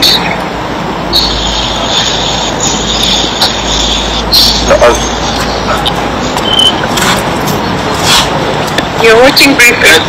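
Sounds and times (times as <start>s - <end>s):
loud steady hiss: 0.0s - 6.4s
high-pitched whine: 0.0s - 10.0s.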